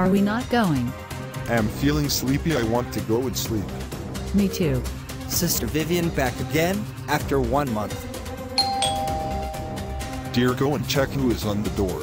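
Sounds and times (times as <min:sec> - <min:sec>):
background music: 0:00.0 - 0:12.0
two-note doorbell chime: 0:08.6 - 0:10.6.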